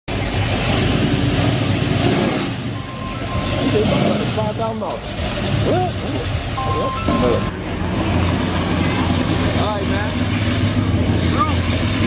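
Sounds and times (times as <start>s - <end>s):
pickup truck engine revving: 0.1s - 12.0s.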